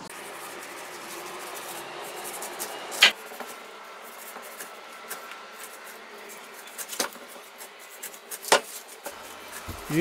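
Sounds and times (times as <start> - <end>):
knife cutting pineapple rind: 0.1 - 10.0.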